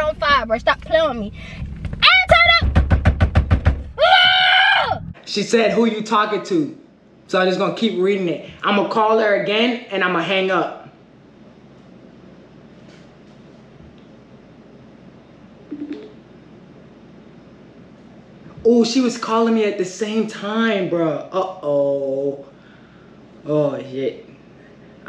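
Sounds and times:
rapid knocks: 1.6s - 4.0s
woman yelling in frustration: 2.0s - 2.7s.

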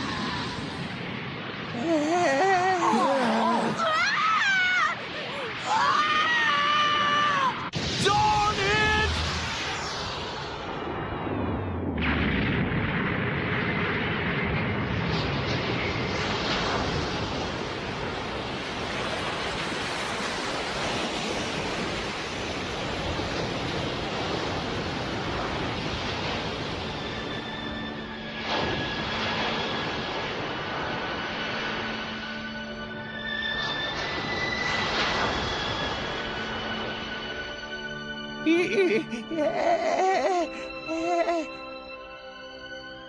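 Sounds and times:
energy blast rushing roar: 7.7s - 27.7s.

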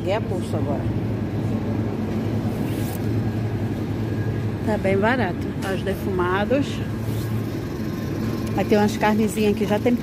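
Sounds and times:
refrigerated cases humming: 0.0s - 10.0s
ventilation noise: 0.0s - 10.0s.

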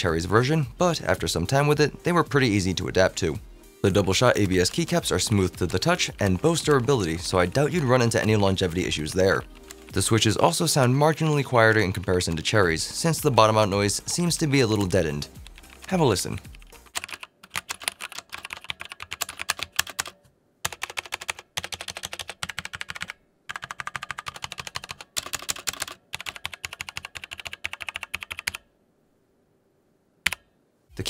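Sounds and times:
mechanical keyboard typing: 14.7s - 28.6s, 30.2s - 30.4s.

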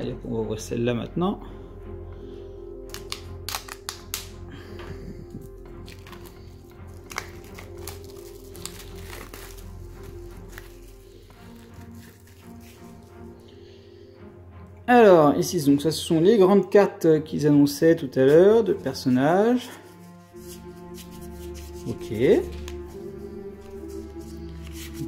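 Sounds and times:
quiet background music: 0.0s - 25.0s
plastic wrap crinkling and tearing: 2.9s - 4.4s, 5.4s - 12.9s.

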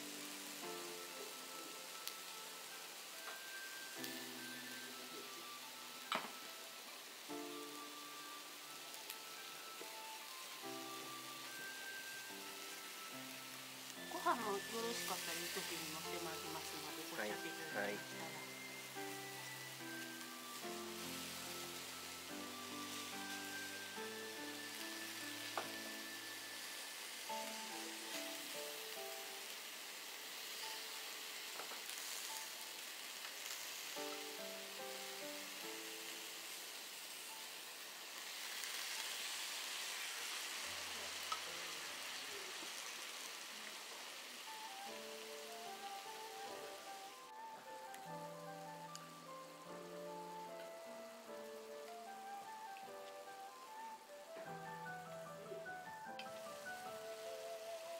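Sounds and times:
slow melodic background music: 0.0s - 41.8s, 44.4s - 57.9s
food sizzling in a pan: 0.0s - 57.9s.

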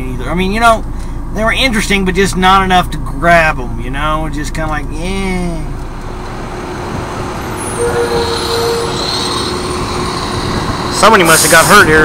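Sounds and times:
vehicle engines idling: 0.0s - 12.0s
short higher tone: 7.5s - 10.3s.

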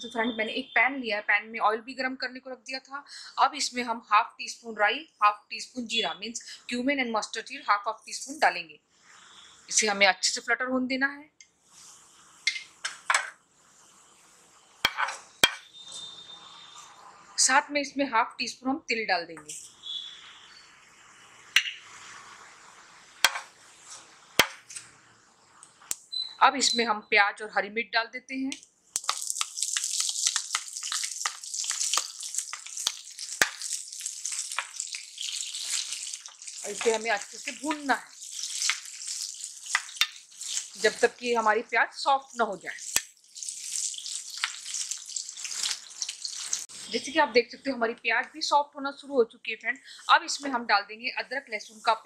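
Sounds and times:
seeds sizzling in hot oil: 9.0s - 10.4s, 11.6s - 17.6s, 19.5s - 26.2s, 28.8s - 47.2s, 49.8s - 50.6s
seeds crackling: 28.5s - 41.4s, 42.2s - 47.1s.

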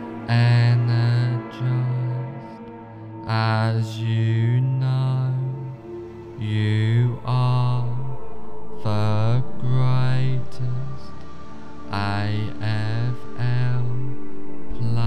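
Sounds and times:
low chanted vocal drone: 0.0s - 15.0s
meditation music: 0.0s - 15.0s.

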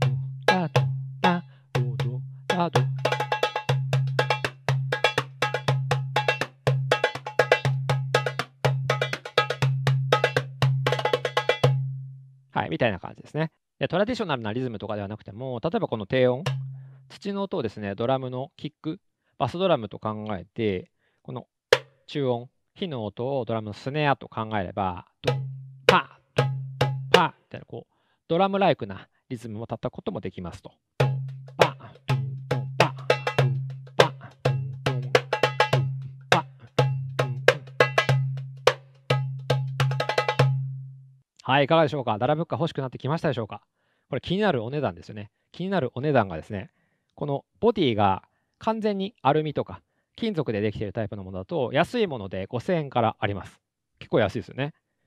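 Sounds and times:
goblet drum groove: 0.0s - 12.1s, 16.3s - 16.9s, 25.2s - 27.3s, 31.0s - 40.9s.

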